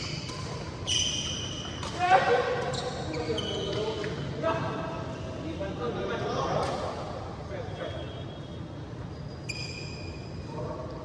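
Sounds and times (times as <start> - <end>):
racket hitting shuttlecock: 0.0 - 0.7
shoes squeaking on court floor: 0.0 - 4.3, 9.1 - 10.5.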